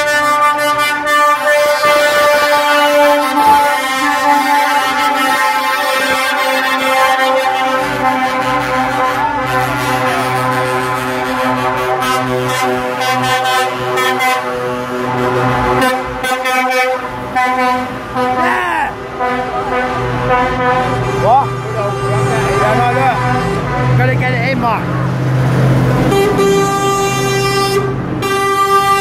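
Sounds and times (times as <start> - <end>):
lorry air horns blasting: 0.0 - 24.3, 25.9 - 29.0
trucks driving past: 0.0 - 29.0.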